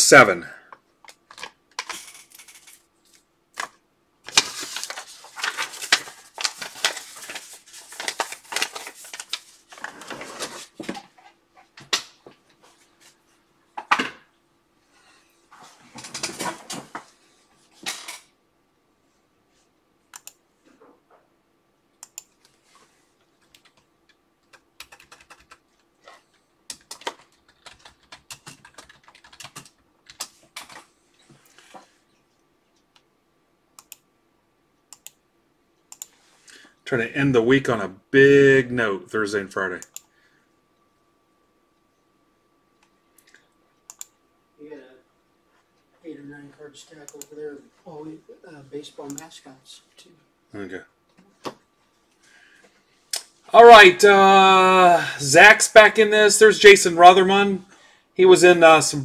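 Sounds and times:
typing on computer keyboard: 23.4 - 30.8.

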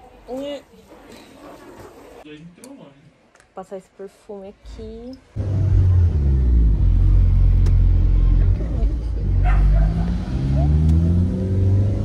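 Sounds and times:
road rumble: 4.6 - 12.0.

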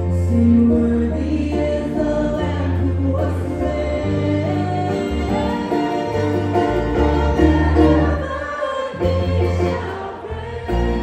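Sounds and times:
bowed strings: 0.0 - 11.0
electric bass: 0.0 - 11.0
woman singing: 0.0 - 11.0.

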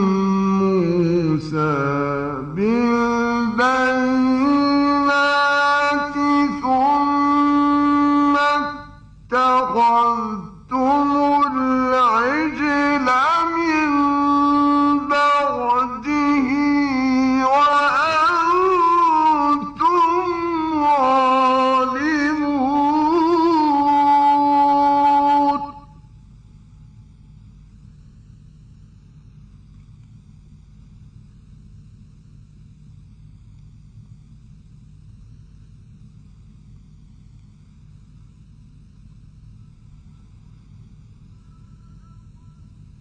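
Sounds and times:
man reciting melodically: 0.0 - 25.9
low steady hum and hiss: 0.0 - 43.0.

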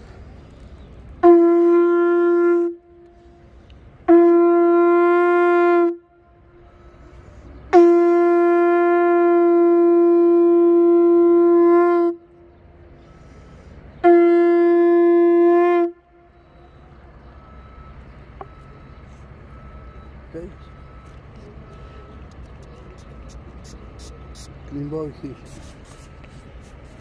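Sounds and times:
conch shell trumpet blasts: 1.2 - 3.4, 4.0 - 6.3, 7.7 - 12.3, 14.0 - 16.2.

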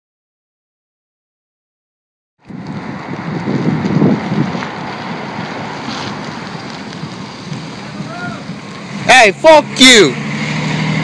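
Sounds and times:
wind buffeting microphone: 2.4 - 9.1.

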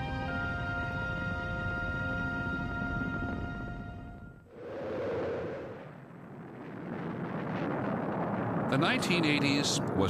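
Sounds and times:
rushing rumbling noise: 4.4 - 10.0.

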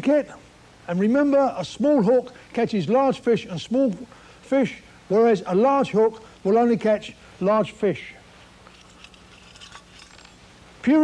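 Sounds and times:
man speaking: 0.0 - 8.3.

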